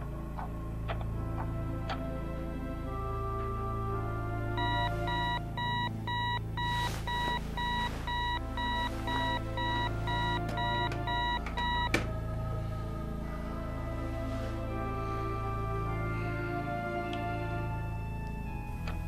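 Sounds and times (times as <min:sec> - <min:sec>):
soft music score: 0:00.0 - 0:19.0
alarm clock beeping: 0:04.6 - 0:12.0
alarm clock switch click: 0:07.6 - 0:12.1.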